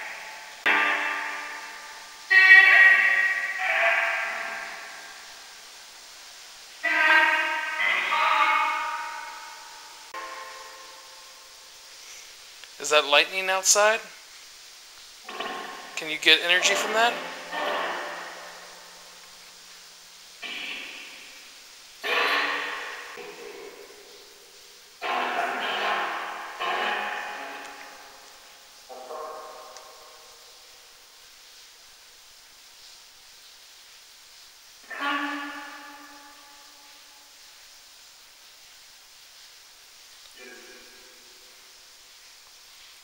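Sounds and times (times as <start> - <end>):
garbled echoing voice-like bursts: 0.0 - 5.3, 6.8 - 10.4, 12.8 - 14.1, 15.3 - 19.0, 20.4 - 24.2, 25.0 - 27.9, 34.8 - 36.3, 40.4 - 41.4.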